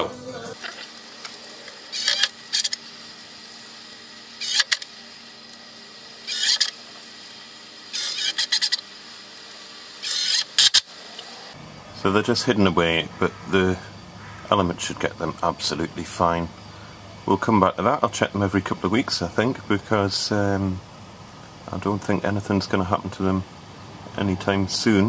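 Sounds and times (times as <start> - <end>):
drill driving screws into wood: 0.6 - 5.6, 6.2 - 11.4.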